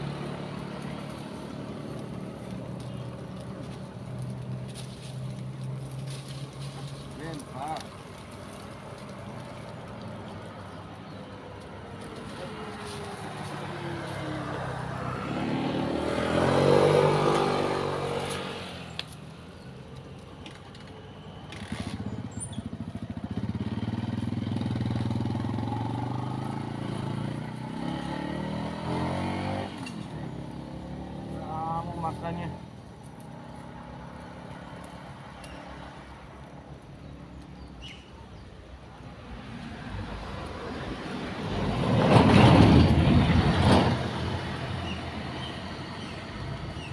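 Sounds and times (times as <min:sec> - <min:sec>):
vehicles passing on road: 0:00.0 - 0:46.9
engine revving: 0:13.2 - 0:19.1, 0:21.5 - 0:35.0, 0:40.6 - 0:46.9.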